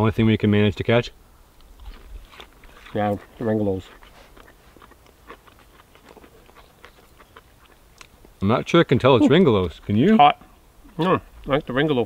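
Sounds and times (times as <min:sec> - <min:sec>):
crunching and chewing fried fish: 0:01.6 - 0:08.9.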